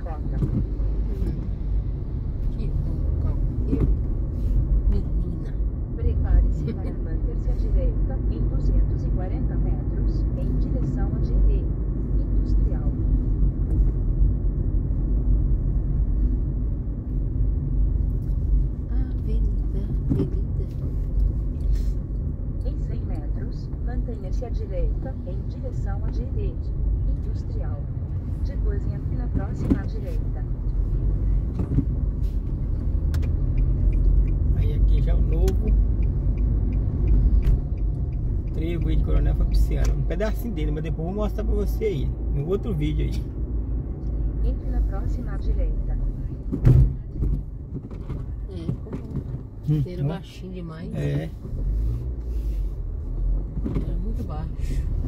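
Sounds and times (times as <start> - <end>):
car engine and road rumble: 0.0 - 55.0.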